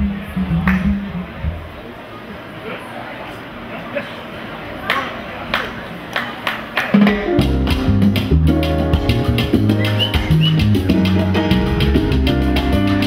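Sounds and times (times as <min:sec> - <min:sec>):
salsa band playing: 0:06.8 - 0:13.0.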